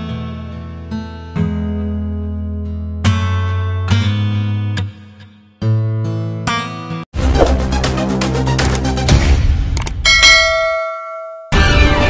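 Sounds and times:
loud music: 0:07.2 - 0:09.6, 0:11.6 - 0:12.0
bell-like ding: 0:10.0 - 0:11.7.

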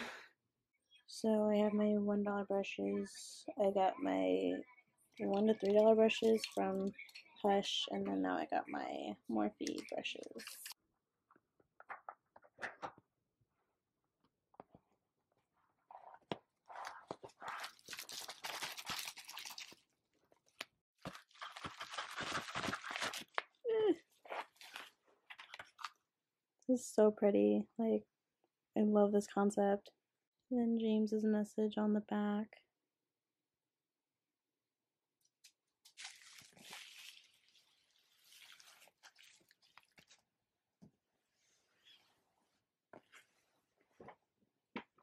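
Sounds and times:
packaging crinkling and rustling: 0:16.7 - 0:23.6, 0:24.2 - 0:26.0, 0:35.9 - 0:40.2.

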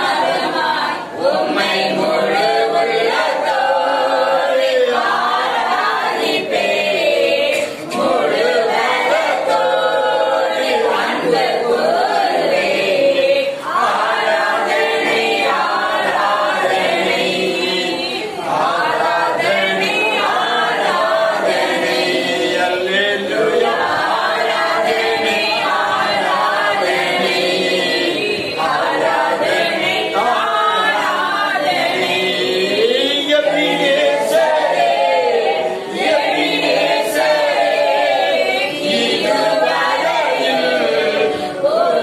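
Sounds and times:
group singing unaccompanied: 0:00.0 - 0:42.0.

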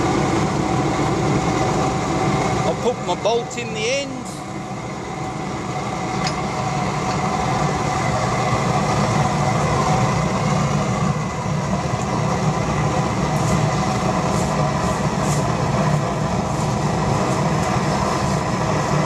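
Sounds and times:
oil burner roaring: 0:00.0 - 0:19.0.

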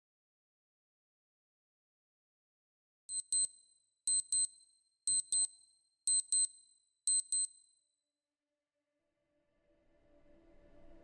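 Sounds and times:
high-pitched double beeps: 0:06.1 - 0:06.5.

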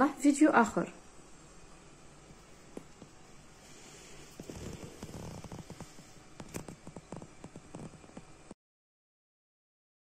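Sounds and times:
light hiss: 0:00.9 - 0:08.6
log fire crackling and popping: 0:04.4 - 0:08.6.

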